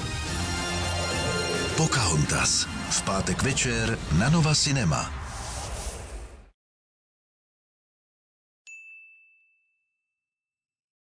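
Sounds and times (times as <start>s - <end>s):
high clear ding: 8.7s - 10.2s.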